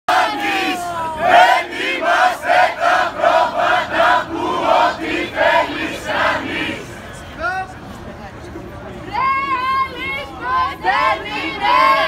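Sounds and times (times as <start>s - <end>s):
crowd chanting in unison: 0.1s - 7.0s, 10.4s - 12.0s.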